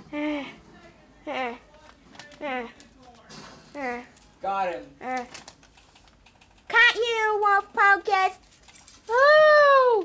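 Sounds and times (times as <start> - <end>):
clicking and rustling of branches: 8.1 - 9.4.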